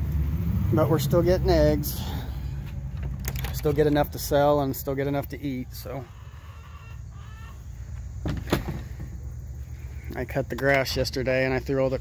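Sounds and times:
hens clucking: 4.7s - 8.2s.

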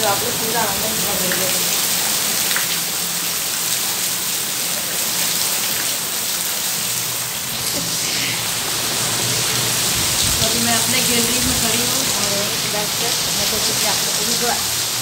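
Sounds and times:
heavy rain on concrete: 0.0s - 15.0s.

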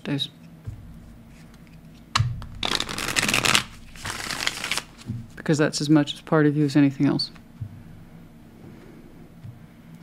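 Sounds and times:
cards snapping: 2.2s - 5.1s
cards fluttering while shuffled: 2.6s - 5.1s.

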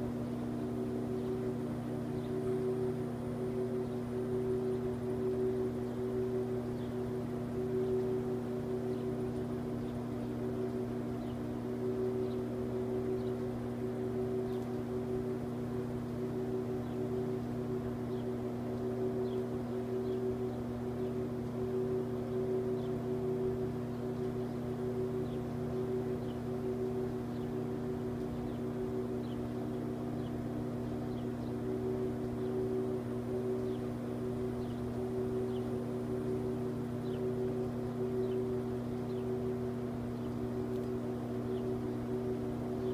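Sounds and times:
steady machine hum: 0.0s - 42.9s
faint high ticks: 40.2s - 41.0s.

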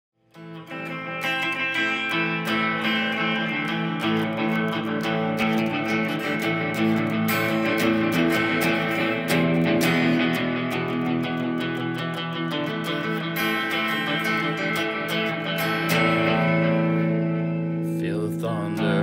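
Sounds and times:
electric guitar chords: 0.2s - 19.0s.

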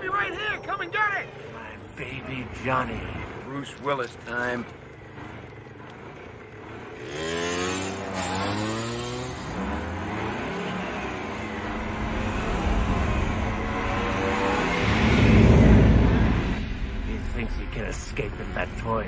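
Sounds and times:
vehicle engines revving: 0.0s - 19.0s
deep heavy engine rumble: 1.5s - 7.0s, 11.4s - 19.0s.

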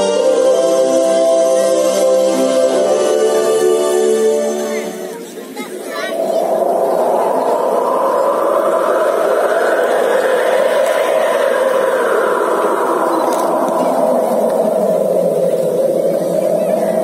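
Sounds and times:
loud steady rushing noise: 0.0s - 17.0s.

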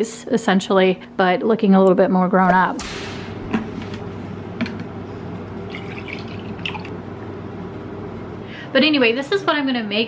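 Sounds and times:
water running from a tap: 5.7s - 6.9s.

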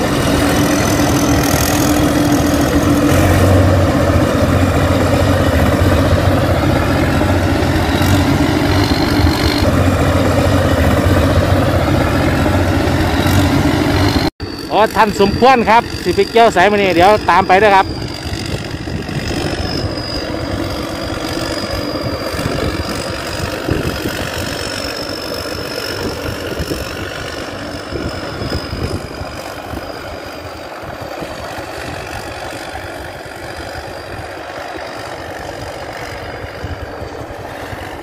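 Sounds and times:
combine harvester engine running: 0.0s - 38.0s
high wavering whine: 0.0s - 38.0s.

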